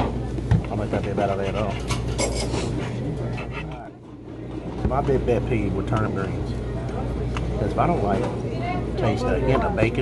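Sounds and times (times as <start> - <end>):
people talking: 4.8 - 10.0.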